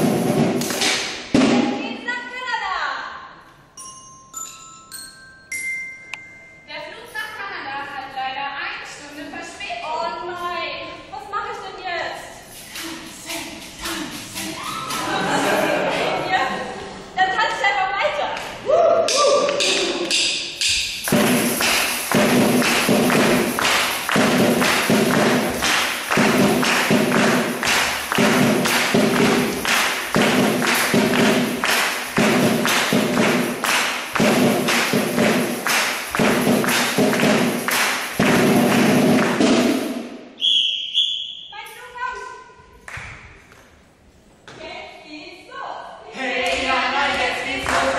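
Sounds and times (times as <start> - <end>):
drum playing fast rhythm: 0.0 - 1.6, 19.6 - 40.1.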